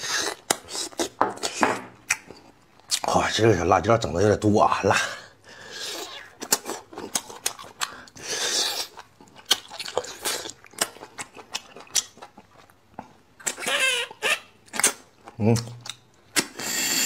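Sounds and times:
sucking and slurping: 16.4s - 17.0s.

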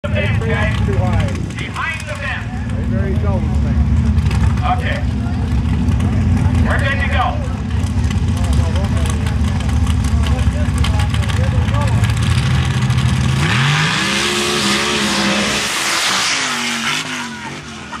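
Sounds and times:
engine idling with heavy rumble: 0.0s - 13.8s
engine revving sharply: 12.1s - 18.0s
mud spray rush: 13.4s - 18.0s.

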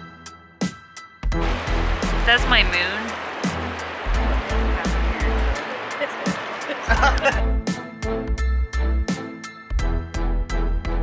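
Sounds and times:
background music with beat: 0.0s - 11.0s
deep bass thuds: 1.3s - 5.6s.

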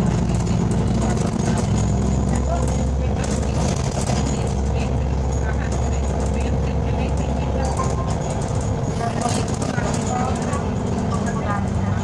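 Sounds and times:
bus engine droning: 0.0s - 12.0s
bus interior rattles: 0.0s - 12.0s.

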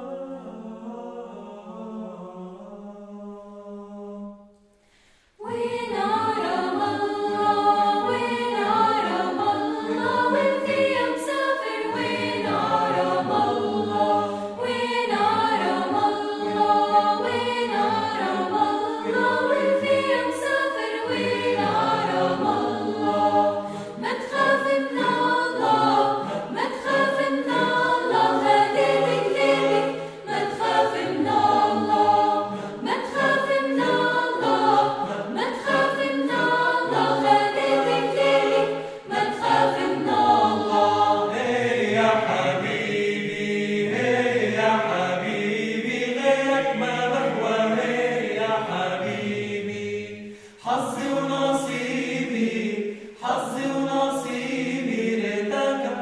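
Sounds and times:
mixed choir singing unaccompanied: 0.0s - 4.5s, 5.4s - 56.0s.

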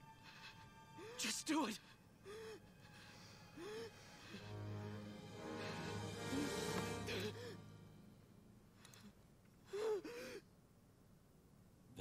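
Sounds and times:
person gasping: 2.2s - 7.8s.

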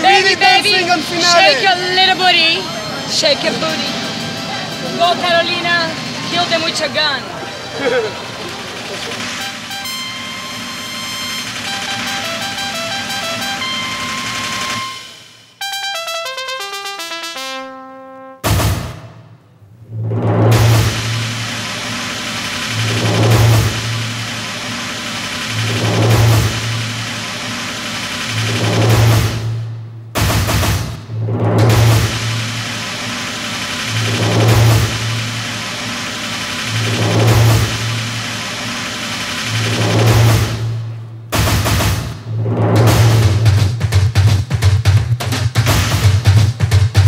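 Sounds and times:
rapid snare drumming: 0.0s - 15.3s, 18.4s - 19.2s, 20.3s - 47.0s
deep drum hits: 18.4s - 19.2s, 19.9s - 21.7s, 28.4s - 32.8s, 39.6s - 47.0s
steady wash of sound: 19.8s - 29.8s.

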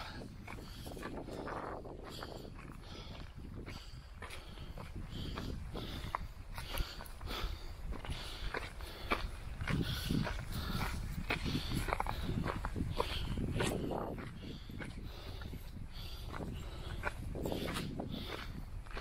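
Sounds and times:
footsteps crunching on gravel: 0.0s - 19.0s
person panting heavily: 0.0s - 19.0s.

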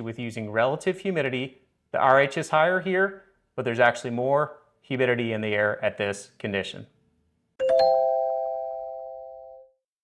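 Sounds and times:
bright chime chord: 7.6s - 9.7s.

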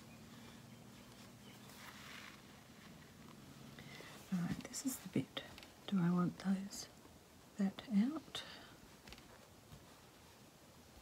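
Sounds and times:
soft vocal sounds with hiss: 0.0s - 11.0s.

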